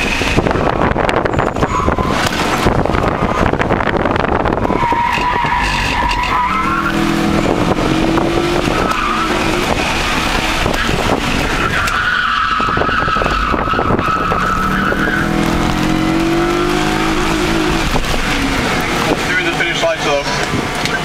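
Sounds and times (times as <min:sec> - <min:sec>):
car engine working hard: 0:00.0 - 0:21.0
tyres squealing: 0:04.6 - 0:20.5.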